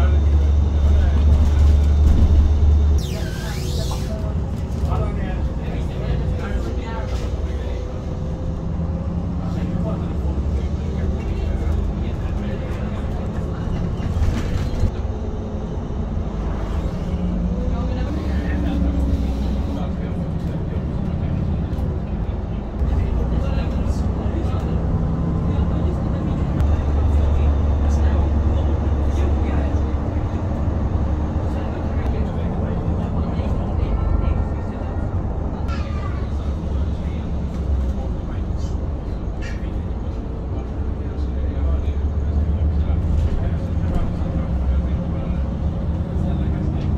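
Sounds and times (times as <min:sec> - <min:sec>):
bus engine and road rumble: 0:00.0 - 0:46.9
faint voices: 0:00.0 - 0:46.9.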